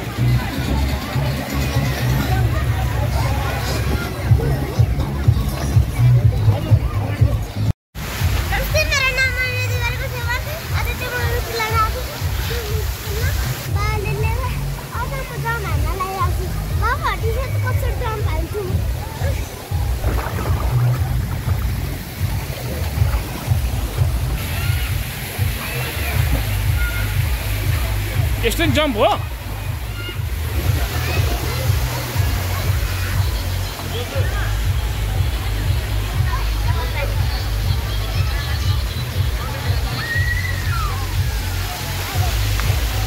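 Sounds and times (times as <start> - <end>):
background music with bass: 0.0 - 43.0
water sloshing and splashing: 9.9 - 35.4.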